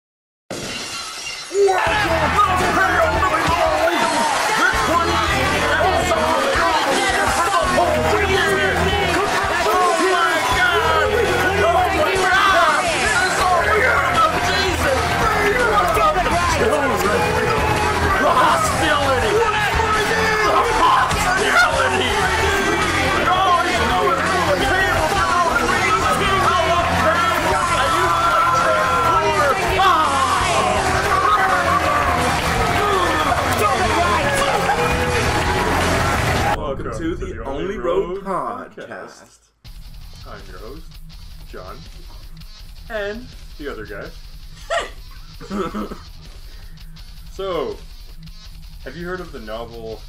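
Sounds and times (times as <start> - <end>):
glass shattering crash: 0.5 - 1.7
voice with music: 1.7 - 38.3.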